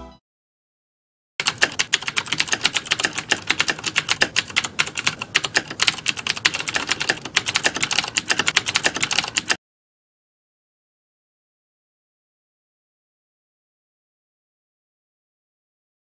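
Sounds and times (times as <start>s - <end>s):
keyboard typing clicks: 1.4s - 9.6s.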